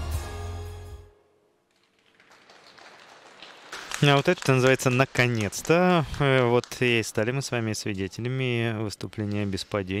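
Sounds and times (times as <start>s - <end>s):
audience applause: 1.8s - 7.5s.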